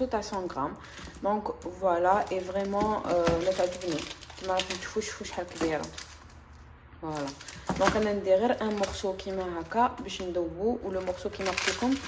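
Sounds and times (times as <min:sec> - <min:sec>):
woman's voice: 0:00.0 - 0:06.0, 0:07.0 - 0:12.0
foil wrapper rustling: 0:00.8 - 0:06.5, 0:07.1 - 0:12.0.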